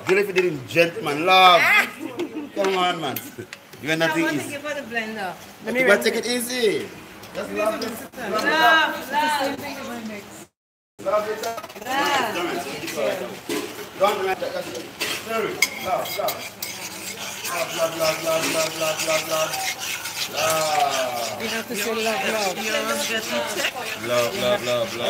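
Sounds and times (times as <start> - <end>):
metal spoon scraping a pot: 11.3 - 25.0.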